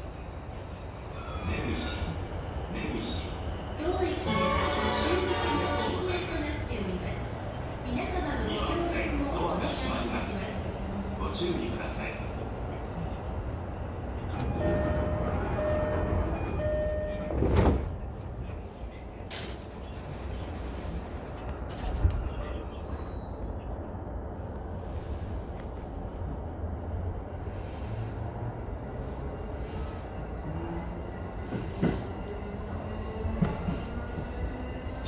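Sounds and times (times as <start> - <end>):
train wheels rumbling on rail: 0.0 - 35.0
short beeps: 14.5 - 17.4.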